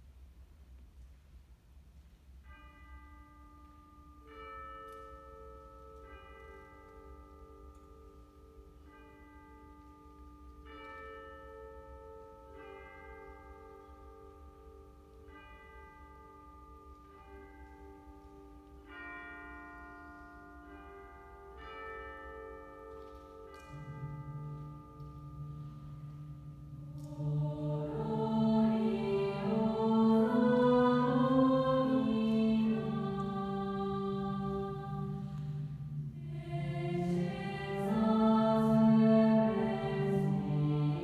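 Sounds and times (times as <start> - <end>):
bell-like tuned percussion notes: 2.5 - 41.0.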